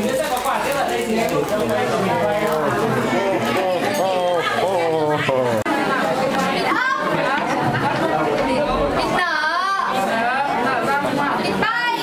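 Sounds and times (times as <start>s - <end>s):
crowd chattering: 0.0s - 12.0s.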